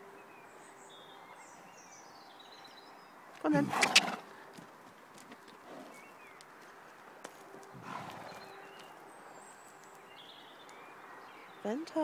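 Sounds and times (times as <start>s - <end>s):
horse moving on dirt: 2.7s - 11.8s.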